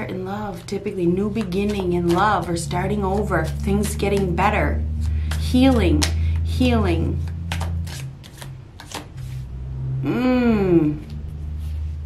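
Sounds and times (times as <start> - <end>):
cards snapping and rustling: 0.5 - 4.3, 4.9 - 6.5, 7.2 - 9.4.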